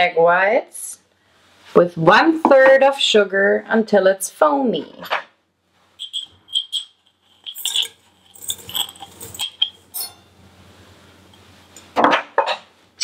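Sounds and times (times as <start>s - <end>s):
sugar pouring: 6.0s - 10.1s
glass jar clinking on steel bowl: 6.0s - 10.3s.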